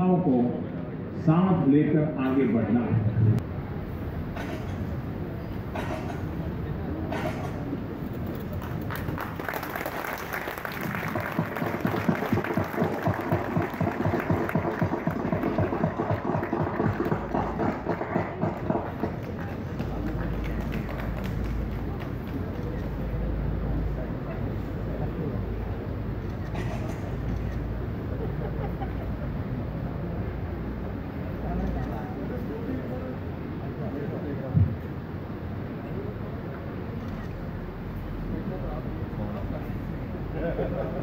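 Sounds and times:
crowd applauding: 8.1s - 23.1s.

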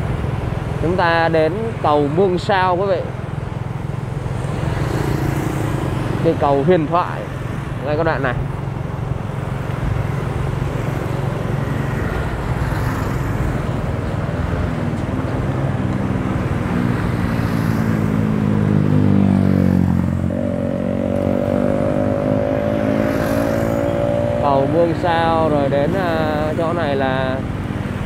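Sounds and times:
street traffic: 0.0s - 28.0s
motorbike engine revving: 16.9s - 26.4s.

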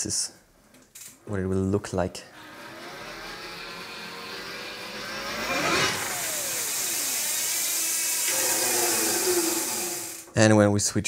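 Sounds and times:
electric motor whine: 2.4s - 10.4s.

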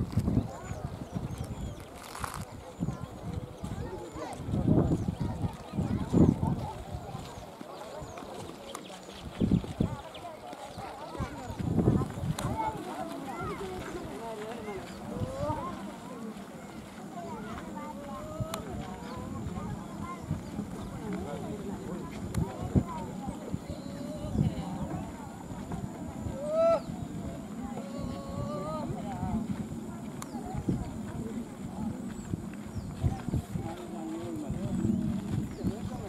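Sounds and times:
footsteps on dirt track: 0.0s - 36.0s
group of people talking: 0.0s - 36.0s.

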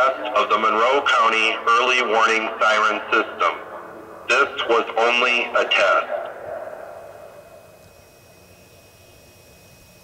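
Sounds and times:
siren voice message echoing: 0.0s - 7.0s.

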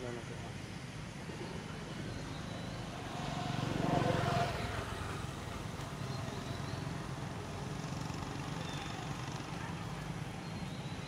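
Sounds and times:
outdoor background noise: 0.0s - 11.0s
vehicle passing by: 2.4s - 10.4s.

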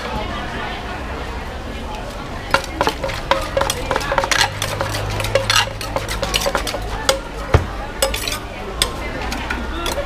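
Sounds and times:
pestle pounding in clay mortar: 2.5s - 9.0s.

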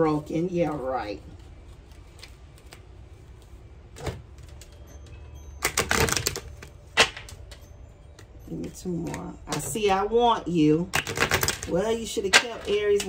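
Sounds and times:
cards being shuffled: 0.6s - 3.6s, 11.0s - 13.0s.

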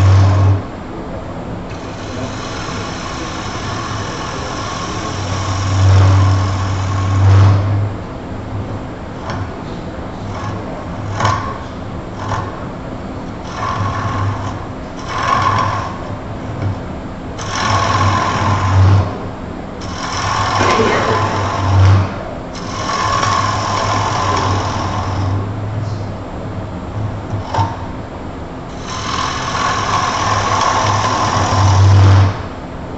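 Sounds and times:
gouge cutting spinning wood: 0.0s - 0.7s, 1.7s - 25.6s, 28.7s - 32.6s
wood lathe motor hum: 0.0s - 0.7s, 1.7s - 8.1s, 9.1s - 25.6s, 28.7s - 32.6s.

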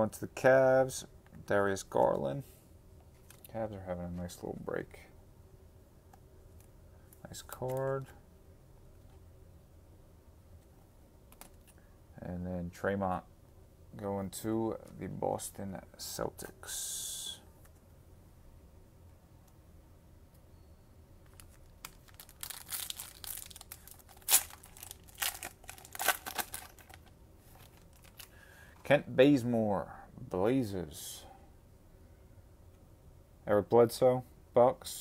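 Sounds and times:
foil wrapper crinkling and tearing: 21.3s - 28.4s.

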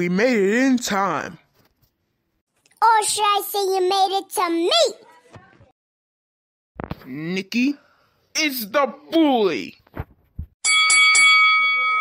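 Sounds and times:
bell ringing: 10.6s - 12.0s.

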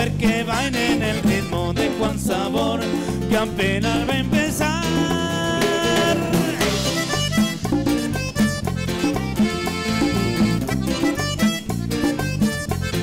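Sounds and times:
live band dance music: 0.0s - 13.0s.

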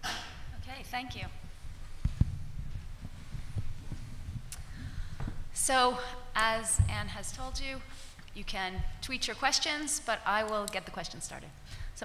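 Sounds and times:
thumps on table microphone: 1.2s - 5.6s, 6.7s - 7.7s.

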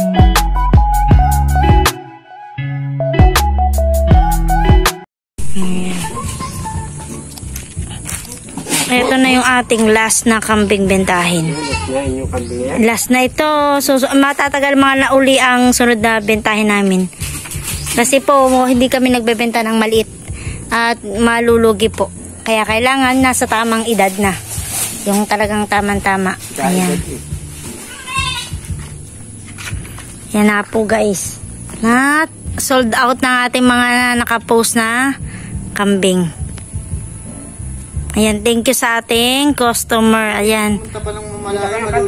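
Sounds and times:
steady background noise: 5.5s - 42.0s
faint goat sounds: 10.9s - 12.8s, 26.9s - 28.8s
man's voice: 11.6s - 12.9s, 40.9s - 42.0s.

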